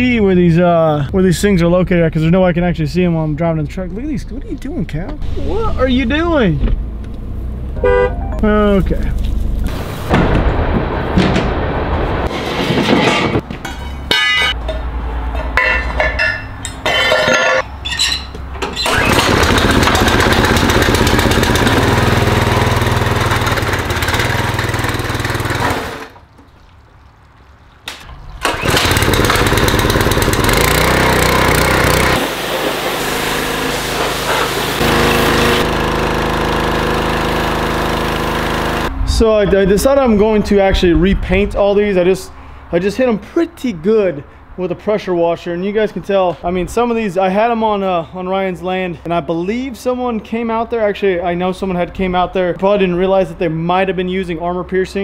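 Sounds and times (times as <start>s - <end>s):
truck driving through dry grass: 8.7s - 11.1s
pressure washer engine running: 18.9s - 26.1s, 28.4s - 38.9s.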